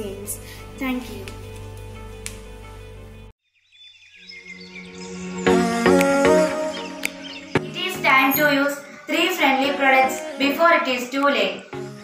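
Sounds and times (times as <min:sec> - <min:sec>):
background music: 0:00.0 - 0:03.3, 0:04.4 - 0:12.0.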